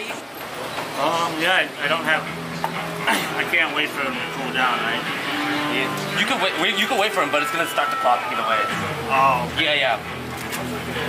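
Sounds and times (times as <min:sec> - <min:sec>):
people talking: 0:01.0 - 0:02.4, 0:03.1 - 0:05.1, 0:05.7 - 0:11.0.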